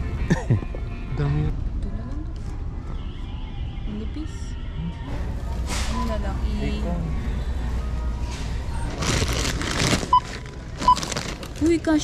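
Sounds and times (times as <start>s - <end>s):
packaging rustling: 8.9s - 11.8s.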